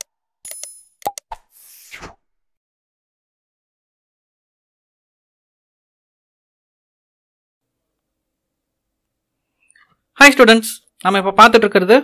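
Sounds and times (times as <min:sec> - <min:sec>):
popping mouse clicks: 0:00.0 - 0:01.5.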